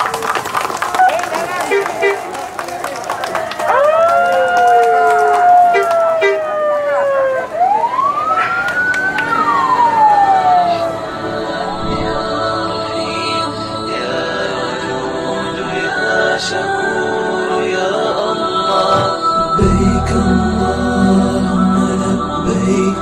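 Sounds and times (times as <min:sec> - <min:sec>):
people clapping: 0:00.0 - 0:10.9
crowd noise: 0:00.0 - 0:23.0
vehicle sirens wailing: 0:03.5 - 0:12.7.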